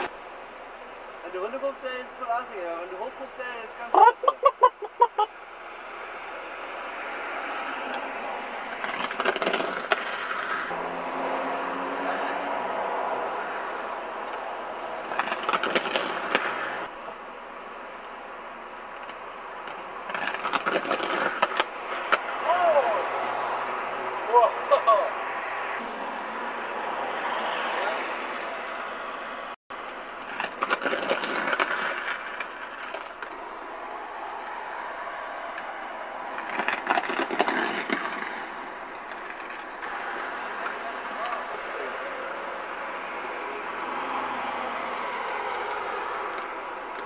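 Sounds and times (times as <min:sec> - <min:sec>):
steady traffic hiss: 0:00.0 - 0:47.0
car passing: 0:05.1 - 0:47.0
voices calling out: 0:21.9 - 0:25.8.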